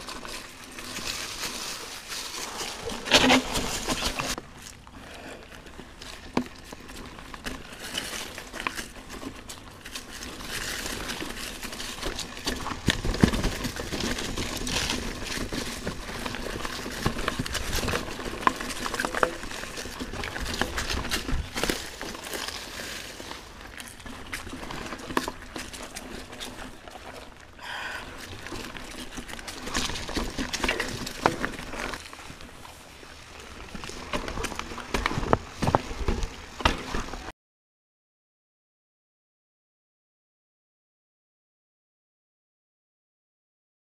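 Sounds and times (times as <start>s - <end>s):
bike rattling over stones: 0.0s - 37.3s
tyres crunching on dirt trail: 0.0s - 37.3s.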